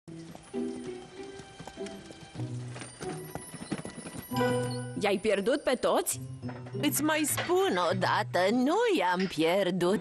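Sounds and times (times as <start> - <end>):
hooves clip-clopping: 0.1 - 5.5
background music with held notes: 0.1 - 10.0.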